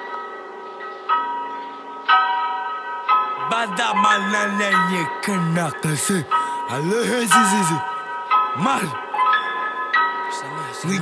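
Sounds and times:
ringing bell tones: 0.0s - 11.0s.

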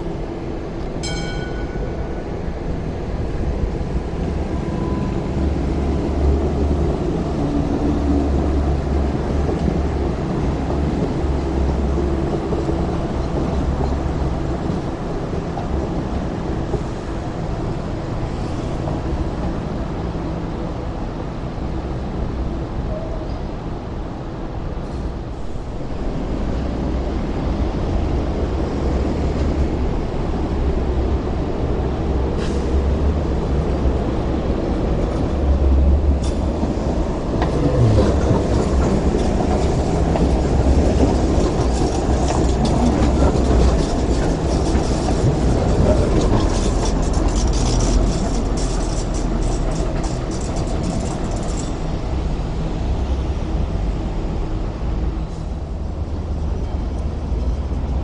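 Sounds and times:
light rail train passing: 0.0s - 58.0s
wheels clicking and rattling: 36.2s - 52.2s.

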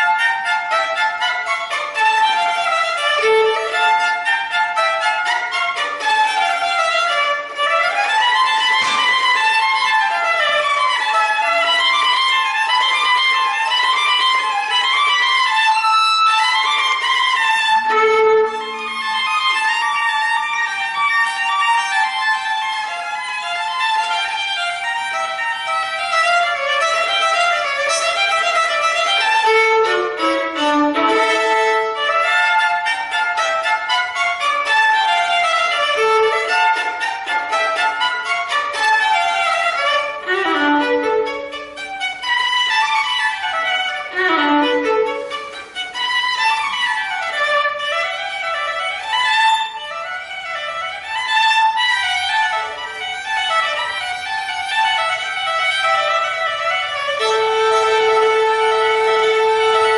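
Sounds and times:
solo violin quick running notes: 16.7s - 21.8s.

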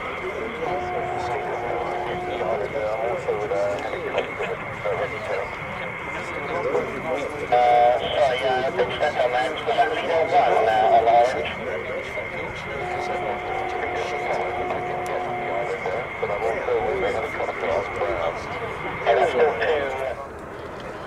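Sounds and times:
two-note hum: 0.0s - 4.0s, 12.4s - 19.0s
high-pitched whine: 0.0s - 21.0s
indistinct talking: 0.0s - 21.0s.

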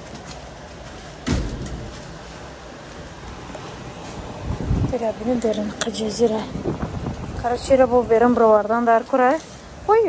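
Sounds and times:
thump: 1.2s - 2.1s.

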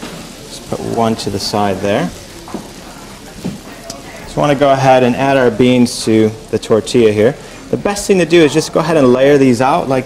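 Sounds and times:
food crackling on a hob: 0.0s - 10.0s.

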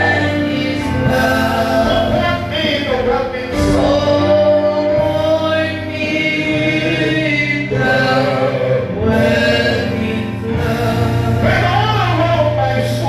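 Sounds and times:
group singing gospel song: 0.0s - 13.0s
instrumental backing: 0.0s - 13.0s.

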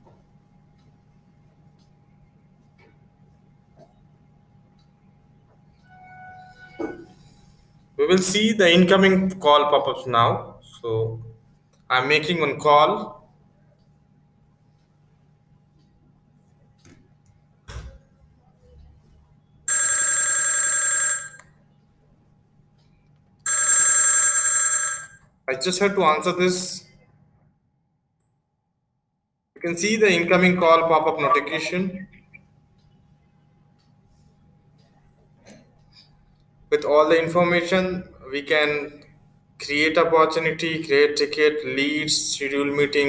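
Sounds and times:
electronic phone ringtone: 19.7s - 21.4s, 23.5s - 25.2s.

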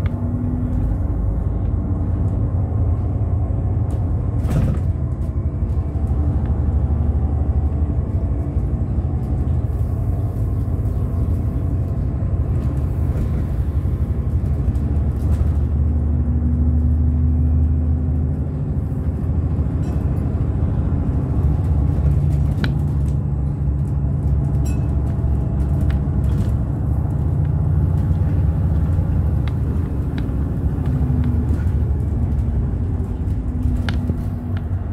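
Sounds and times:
bus engine and road rumble: 0.0s - 34.9s
humming engine note: 0.0s - 34.9s.

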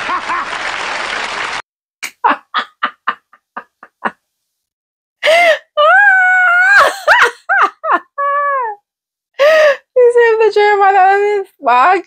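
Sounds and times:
woman laughing: 2.0s - 4.2s, 6.6s - 8.8s.

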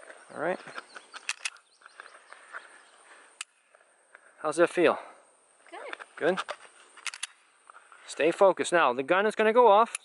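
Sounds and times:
quiet outdoor background: 0.0s - 10.0s.

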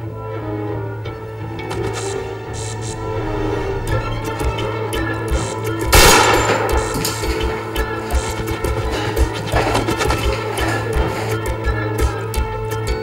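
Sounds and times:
background music with steady beat: 0.0s - 13.0s.

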